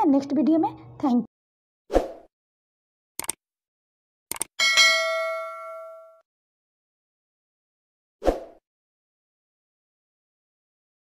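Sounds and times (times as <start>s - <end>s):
notification bell ding: 4.6s - 6.2s.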